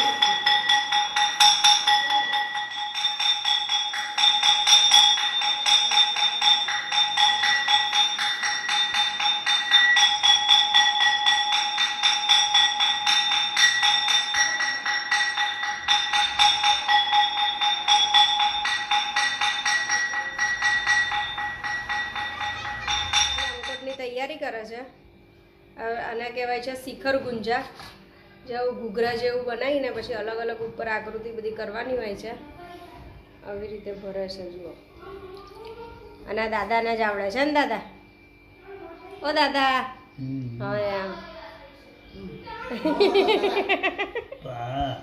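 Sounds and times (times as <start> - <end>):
temple bell rung rapidly: 0.0 - 24.0, 42.5 - 44.3.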